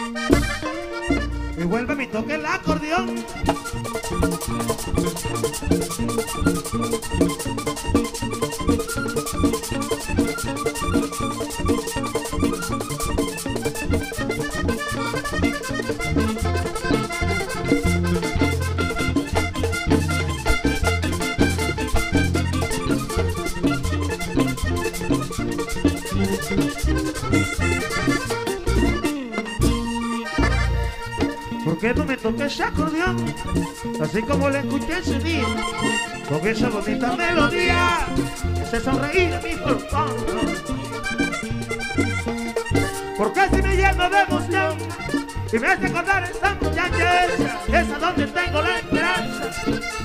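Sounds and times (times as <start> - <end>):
bass notes: 0.0 - 50.0
button accordion melody: 0.0 - 50.0
fast percussion rhythm: 0.0 - 50.0.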